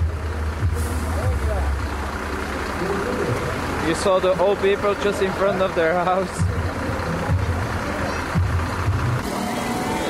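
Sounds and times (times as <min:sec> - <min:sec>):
crowd murmur: 0:00.0 - 0:10.0
large vehicle engine humming: 0:00.0 - 0:10.0.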